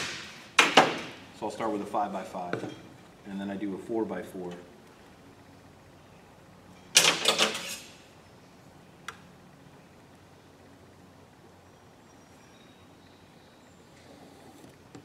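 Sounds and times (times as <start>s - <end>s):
metal square scraping clatter: 7.0s - 8.0s.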